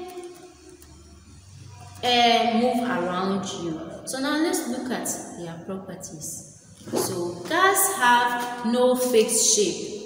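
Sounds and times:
woman speaking: 0:02.0 - 0:09.8.

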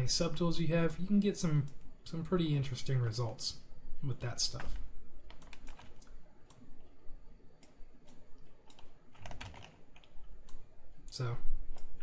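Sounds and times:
computer keyboard keys clicking: 0:04.6 - 0:06.9, 0:07.6 - 0:10.6.

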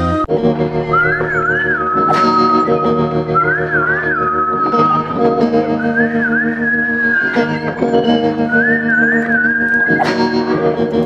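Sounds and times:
plucked guitar-like part: 0:00.0 - 0:11.0
sustained chords: 0:00.0 - 0:11.0
whistle-like synth melody: 0:00.6 - 0:10.8.

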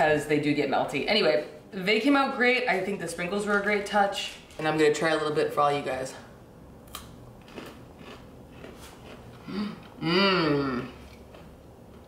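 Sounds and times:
chewing with faint crunches: 0:06.9 - 0:10.0, 0:10.8 - 0:12.0
closed-mouth hum: 0:09.3 - 0:12.0.

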